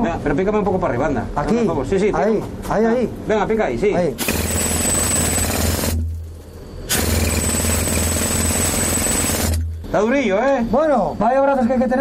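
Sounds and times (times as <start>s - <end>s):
pneumatic pick hammering coal: 4.2s - 6.2s, 6.9s - 9.8s.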